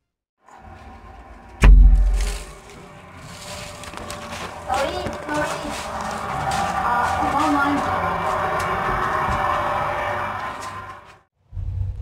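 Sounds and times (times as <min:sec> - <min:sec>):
heavy low thump: 0:01.6 - 0:02.5.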